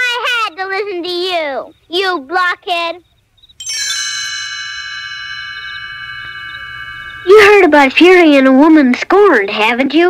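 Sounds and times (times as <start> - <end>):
struck chime ringing: 3.4 - 8.5.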